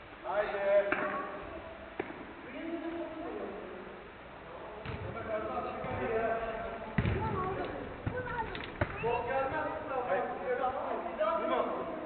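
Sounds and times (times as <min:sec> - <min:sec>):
football being kicked: 0:07.0 - 0:09.7.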